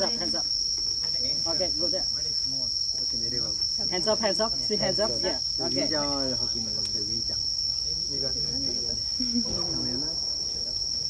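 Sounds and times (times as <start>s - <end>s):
insects shrilling: 0.0s - 11.0s
people talking: 1.1s - 11.0s.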